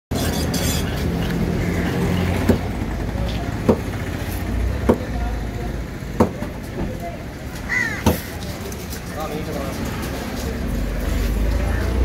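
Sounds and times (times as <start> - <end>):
faint distant voices: 1.6 - 12.0
sharp knocks: 2.4 - 2.7, 3.6 - 4.0, 6.2 - 6.5.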